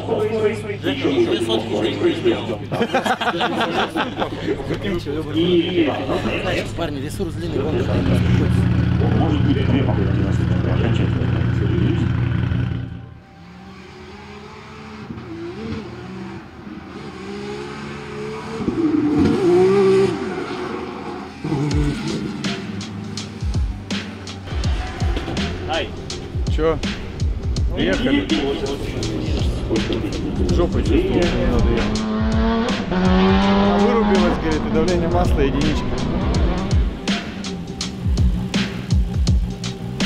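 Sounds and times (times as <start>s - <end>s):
background music: 0.0s - 18.5s, 19.4s - 40.0s
car engine revving hard: 7.7s - 40.0s.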